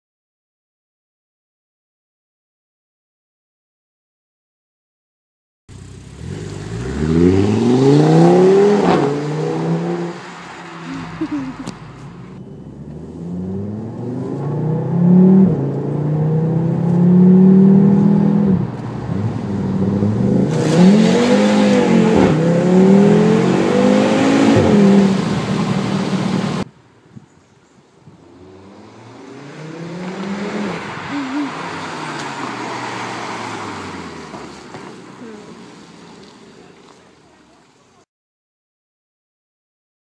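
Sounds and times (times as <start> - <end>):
car engine accelerating hard: 5.7 - 26.7, 28.2 - 37.0.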